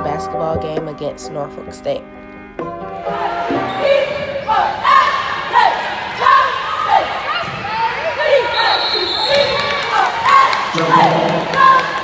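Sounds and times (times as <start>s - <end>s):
echoing voices: 3.0s - 12.0s.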